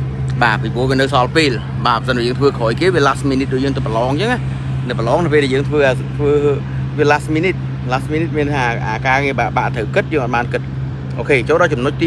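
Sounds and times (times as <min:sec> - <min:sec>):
steady low hum: 0:00.0 - 0:12.0
man talking: 0:00.2 - 0:12.0.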